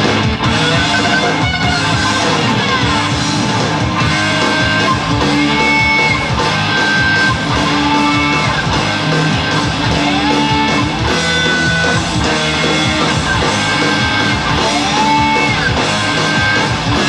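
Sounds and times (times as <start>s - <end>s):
electric guitar bending notes: 0.0s - 17.0s
full low end: 0.0s - 17.0s.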